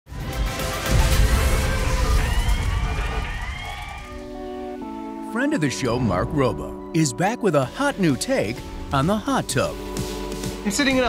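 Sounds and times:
electronic theme music: 0:03.3 - 0:11.0.

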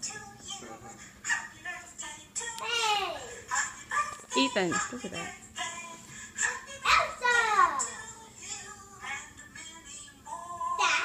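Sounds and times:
music with singing from television: 0:00.0 - 0:11.0.

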